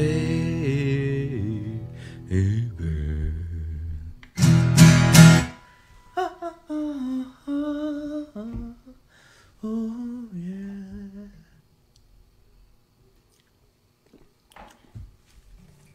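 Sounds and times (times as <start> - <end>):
man humming: 0.0 - 4.2, 6.2 - 9.0, 9.6 - 11.6
guitar chord strummed: 4.4 - 5.8.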